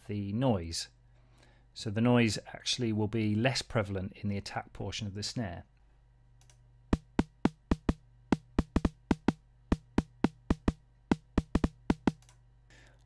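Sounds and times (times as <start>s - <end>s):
synthesised snare drum hits: 7.0s - 12.2s.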